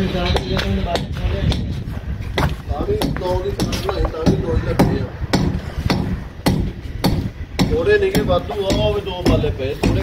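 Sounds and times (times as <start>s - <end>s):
hammer strikes: 2.4s - 10.0s.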